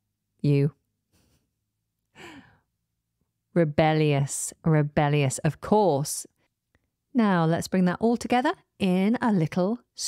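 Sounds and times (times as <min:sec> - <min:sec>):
woman breathing: 0:02.1 - 0:02.7.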